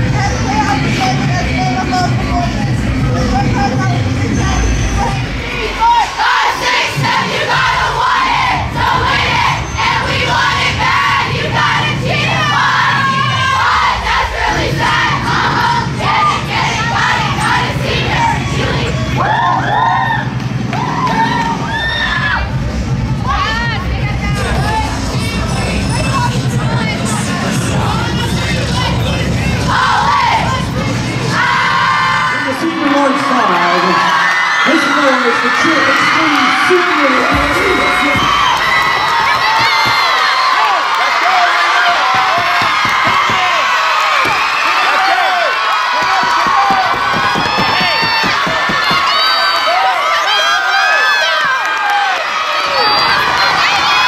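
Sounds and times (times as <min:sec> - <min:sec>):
cheerleaders shouting a chant: 0:00.0 - 0:54.0
high rising yells: 0:04.2 - 0:22.6.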